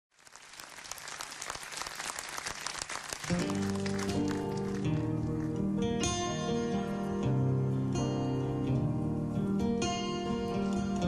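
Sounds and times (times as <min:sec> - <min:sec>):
audience applause: 0:00.1 - 0:05.6.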